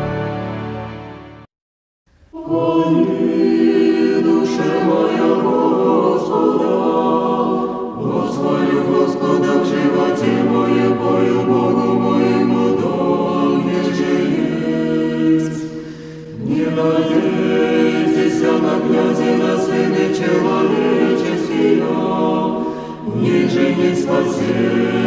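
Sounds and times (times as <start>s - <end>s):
choir singing unaccompanied chant: 2.3s - 25.0s.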